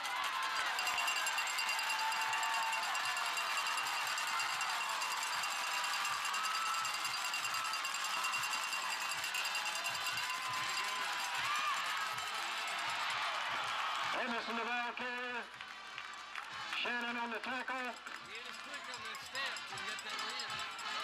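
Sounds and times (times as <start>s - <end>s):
crowd cheering and yelling: 0.0s - 21.0s.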